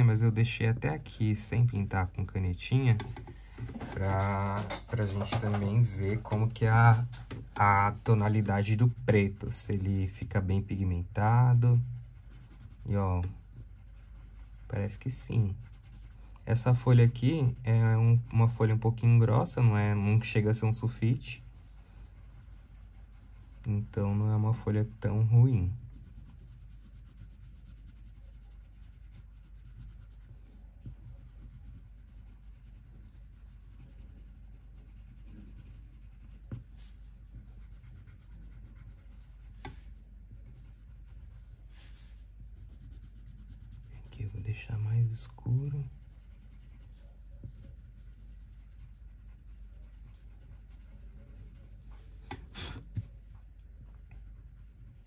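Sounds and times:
coloured pencil scratching on paper: 0.0s - 55.0s.

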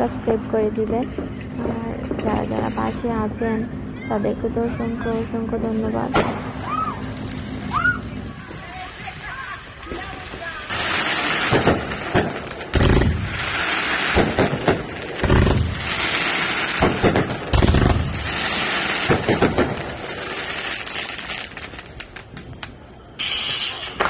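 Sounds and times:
fireworks booming: 0.0s - 24.0s
fireworks crackling and popping: 0.0s - 24.0s.

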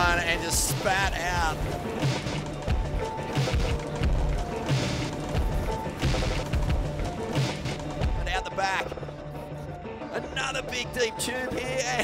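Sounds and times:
drum hits: 1.0s - 8.4s.

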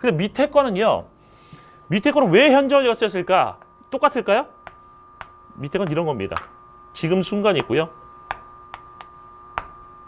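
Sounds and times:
faint steady hum: 0.0s - 10.0s
chalk tapping on chalkboard: 7.6s - 9.8s.

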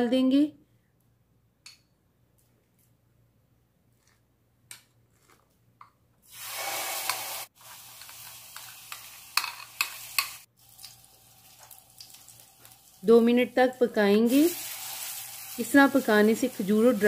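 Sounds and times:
paste sizzling in butter: 6.3s - 13.1s, 13.7s - 17.0s.

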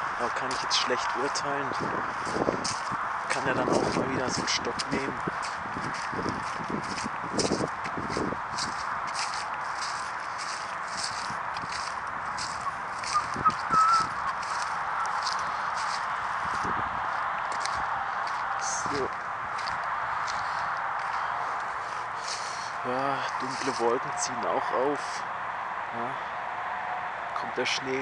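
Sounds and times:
footsteps in dry grass and leaves: 0.0s - 25.8s
steady rushing noise: 0.0s - 27.3s.

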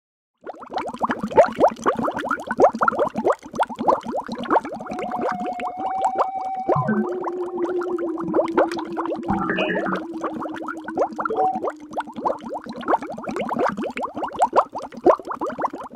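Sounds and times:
underwater bubbling: 0.4s - 15.9s
steady held tone: 4.9s - 12.8s.

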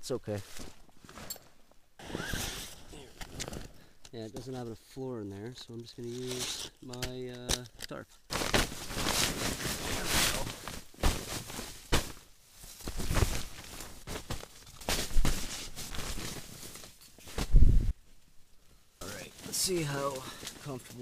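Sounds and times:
tarp rustling and flapping: 2.0s - 3.6s, 8.3s - 17.9s.

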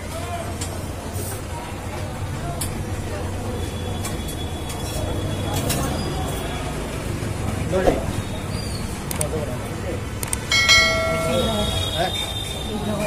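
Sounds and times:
indistinct voices: 0.0s - 13.0s
traffic rumble: 0.0s - 13.0s
sharp clicks: 9.0s - 9.4s, 10.2s - 10.5s.

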